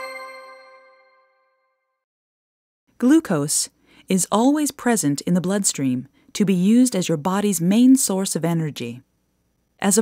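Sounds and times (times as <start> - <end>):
bell-like chime: 0.0 - 1.9.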